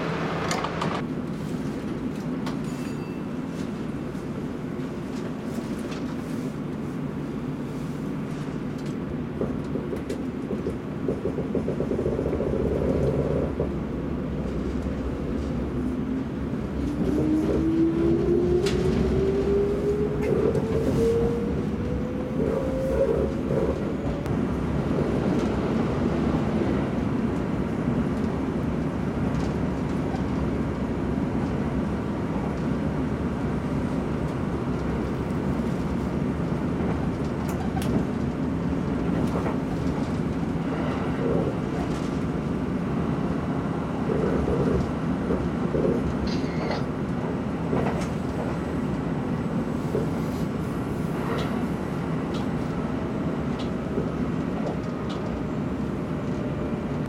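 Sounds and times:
train running rumble: 0.0s - 57.0s.

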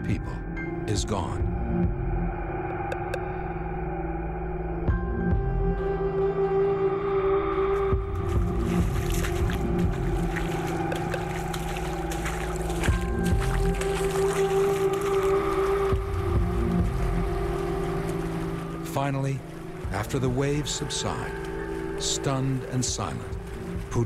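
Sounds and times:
droning music: 0.0s - 24.0s
rushing floodwater rumble: 7.8s - 24.0s.

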